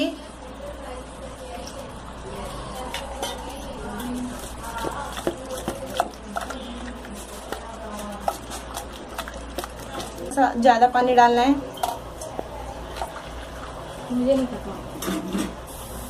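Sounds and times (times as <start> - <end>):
stirring batter in metal bowl: 1.4 - 15.6.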